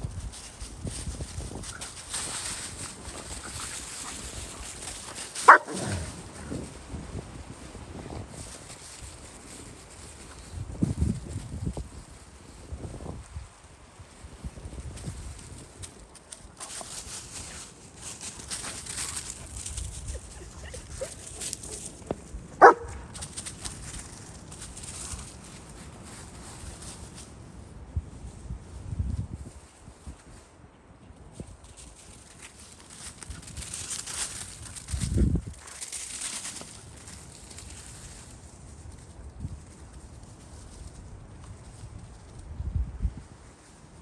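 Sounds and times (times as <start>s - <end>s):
dry leaves rustling: 0.0s - 30.6s, 31.3s - 44.0s
dog barking: 5.4s - 6.1s, 22.6s - 23.1s.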